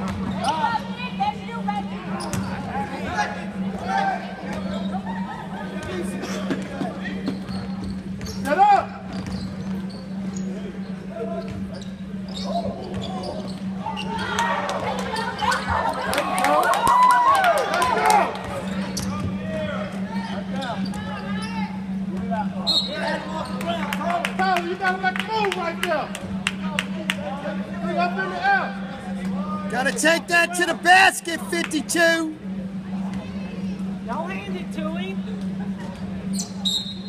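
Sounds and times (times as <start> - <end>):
echoing voices: 29.7 - 32.4
loud shout: 29.7 - 32.4.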